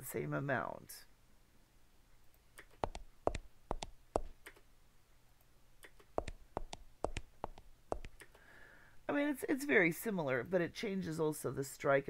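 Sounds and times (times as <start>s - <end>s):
footsteps: 2.8s - 4.4s, 6.2s - 8.2s.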